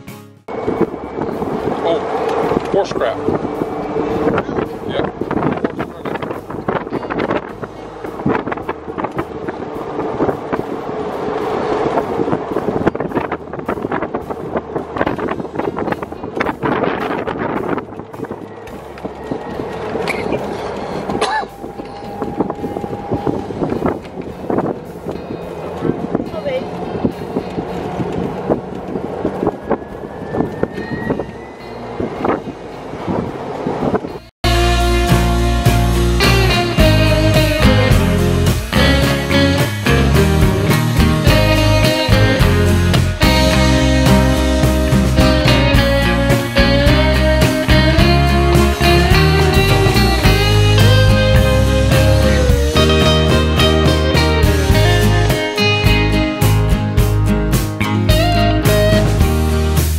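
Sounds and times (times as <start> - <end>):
golf cart road noise: 0.0 - 59.9
steady tone: 0.4 - 59.8
wind buffeting microphone: 0.5 - 34.6.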